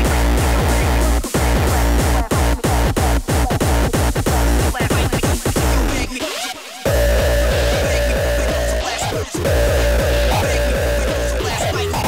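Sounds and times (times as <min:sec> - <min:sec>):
heavy kick drum: 0:00.0 - 0:06.0, 0:06.9 - 0:12.0
hardcore electronic dance music: 0:00.0 - 0:12.0
dense synths: 0:06.8 - 0:12.0.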